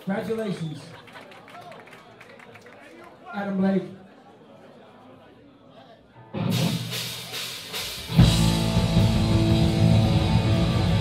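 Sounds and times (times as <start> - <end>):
punk band playing: 6.3 - 11.0.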